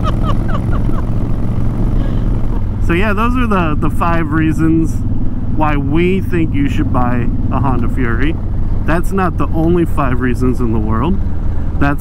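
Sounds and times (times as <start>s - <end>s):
motorcycle engine droning: 0.0s - 12.0s.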